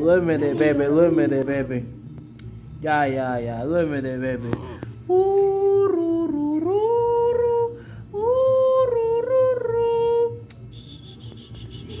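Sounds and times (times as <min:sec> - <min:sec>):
person humming a lullaby: 0:04.5 - 0:12.0.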